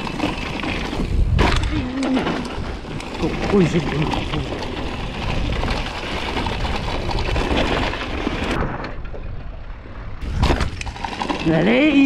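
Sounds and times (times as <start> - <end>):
bike tyres on dry dirt: 0.0 - 12.0.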